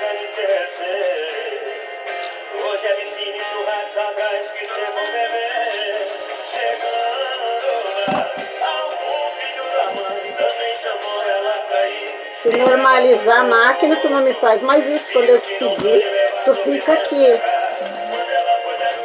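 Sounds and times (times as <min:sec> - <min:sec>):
music with sung vocal: 0:00.0 - 0:19.0.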